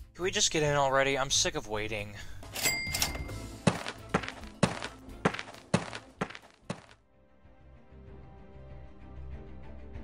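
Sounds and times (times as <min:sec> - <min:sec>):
footsteps dull thuds: 0:03.6 - 0:07.0.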